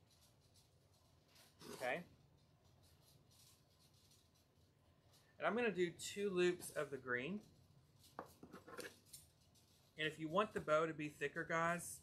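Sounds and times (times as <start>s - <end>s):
ribbon rustling: 0.0s - 5.7s, 6.4s - 10.7s.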